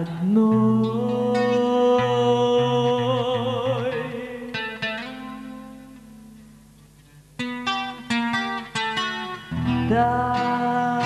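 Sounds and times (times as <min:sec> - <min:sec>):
person singing: 0:00.0 - 0:06.1, 0:09.5 - 0:11.0
acoustic guitar: 0:00.0 - 0:11.0.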